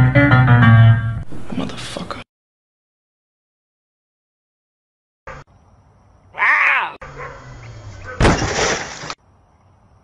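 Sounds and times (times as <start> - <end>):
cougar call: 6.3 - 8.2.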